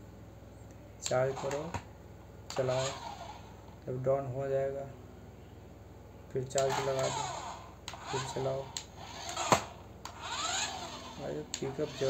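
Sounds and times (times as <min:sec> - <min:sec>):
toy car motor whirring: 0:01.0 - 0:01.8, 0:02.5 - 0:03.8, 0:06.6 - 0:12.0.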